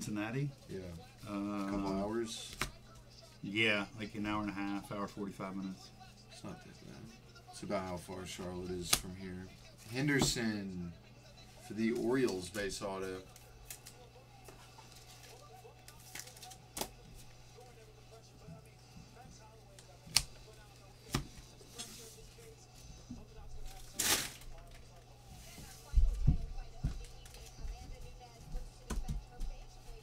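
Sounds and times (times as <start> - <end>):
foil wrapper crinkle: 14.7 - 17.7, 23.6 - 24.9.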